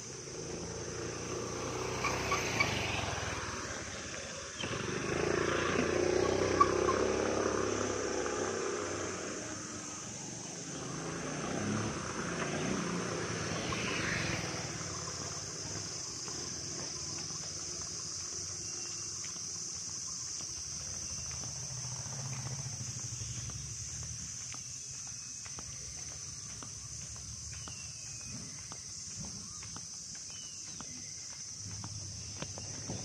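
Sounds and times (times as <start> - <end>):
high insect drone: 0.0 - 33.0
road traffic engines: 0.0 - 33.0.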